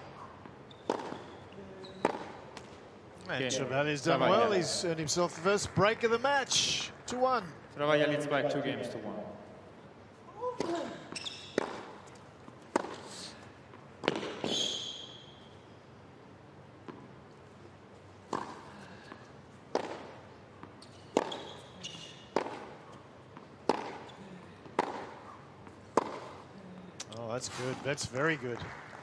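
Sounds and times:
tennis ball hit by rackets: 0:00.8 - 0:01.4, 0:10.6 - 0:12.1, 0:12.7 - 0:13.0, 0:14.0 - 0:14.6, 0:18.3 - 0:18.6, 0:19.7 - 0:20.2, 0:21.1 - 0:21.5, 0:22.3 - 0:22.8, 0:23.6 - 0:26.4.

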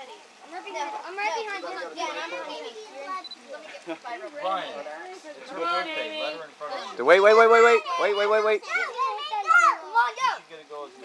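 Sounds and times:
children calling out: 0:06.7 - 0:10.5.

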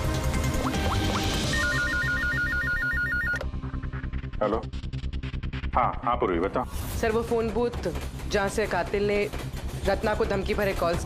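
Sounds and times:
background music: 0:00.0 - 0:11.0
desk telephone ringing: 0:01.5 - 0:03.4.

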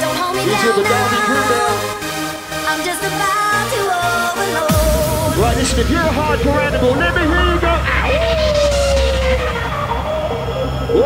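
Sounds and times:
deep bass drone: 0:04.6 - 0:11.0
synth note sliding down: 0:04.7 - 0:11.0.

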